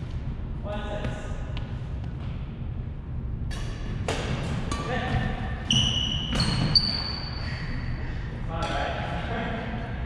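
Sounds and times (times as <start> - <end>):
low rumble of gymnasium hall: 0.0 - 10.0.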